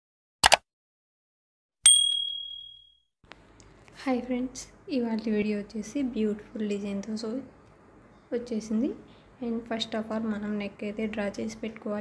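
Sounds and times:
notification bell ding: 1.9 - 2.9.

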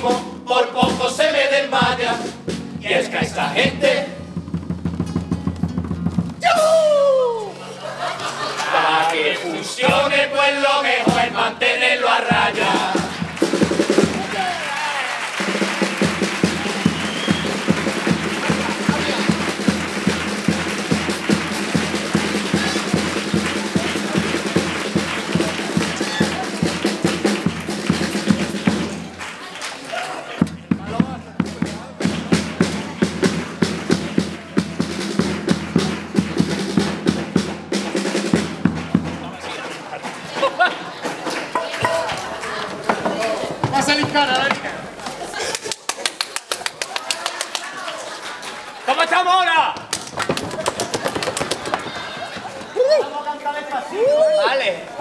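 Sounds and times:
drums beating: 0.0 - 8.6, 9.7 - 29.6, 30.4 - 45.4, 49.6 - 53.1
acoustic guitars: 1.8 - 6.4.

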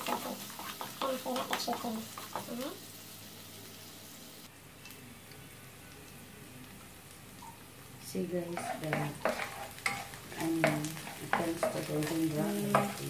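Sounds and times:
wooden spatula stirring: 0.0 - 2.5, 8.5 - 13.0
onions sizzling in oil: 0.0 - 13.0.

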